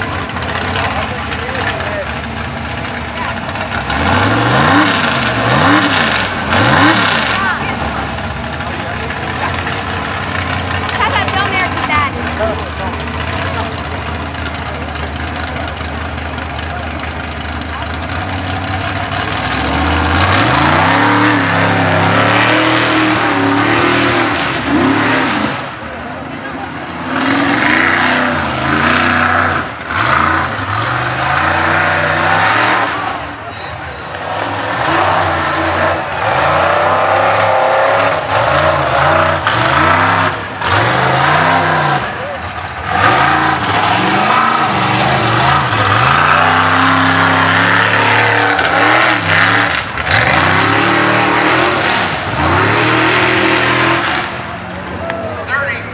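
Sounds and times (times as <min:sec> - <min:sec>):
truck engine revving: 0:00.0 - 0:55.9.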